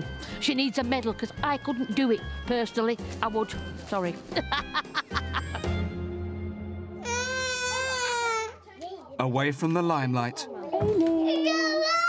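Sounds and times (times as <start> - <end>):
baby crying: 7.0 - 8.6.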